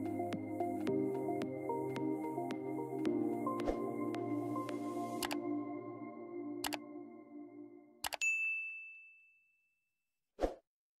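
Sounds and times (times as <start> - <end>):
held music chord: 0.0 - 8.0
mouse double click: 5.2 - 5.4
bright ding: 8.1 - 9.5.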